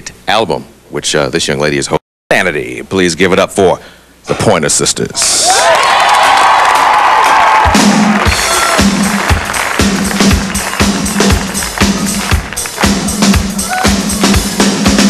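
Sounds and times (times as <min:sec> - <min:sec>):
audience cheering and whooping: 0:05.4 - 0:14.5
kick drum beat: 0:07.6 - 0:15.0.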